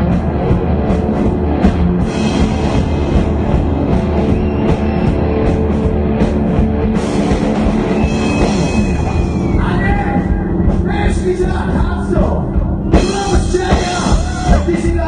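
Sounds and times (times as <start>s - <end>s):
rock band playing: 0.0s - 15.0s.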